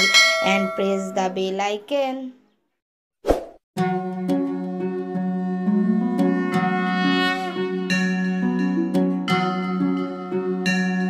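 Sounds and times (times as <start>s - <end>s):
background music with sustained notes: 3.8s - 11.0s.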